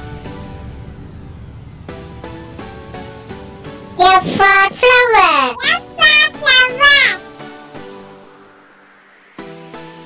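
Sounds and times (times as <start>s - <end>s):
child singing: 4.0s - 7.2s.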